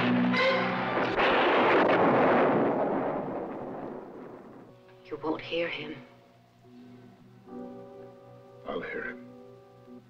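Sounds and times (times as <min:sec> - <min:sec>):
thunderclap: 0:00.0 - 0:05.1.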